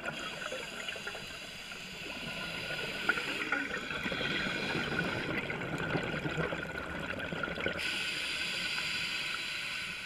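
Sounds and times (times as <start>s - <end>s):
bubbles gurgling underwater: 2.0s - 7.9s
regulator hiss: 7.8s - 10.0s.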